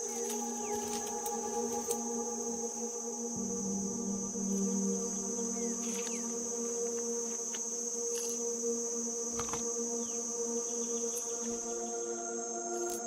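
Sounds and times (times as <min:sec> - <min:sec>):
ambient music with held tones: 0:00.0 - 0:13.0.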